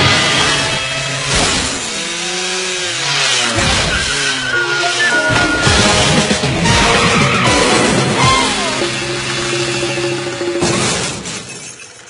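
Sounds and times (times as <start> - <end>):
crash and shattering effects: 0.0 - 2.0, 3.5 - 8.2, 10.6 - 11.7
background music: 4.3 - 10.9.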